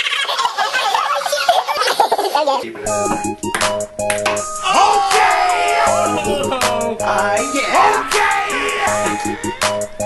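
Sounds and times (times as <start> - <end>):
people hollering: 4.6 - 9.6.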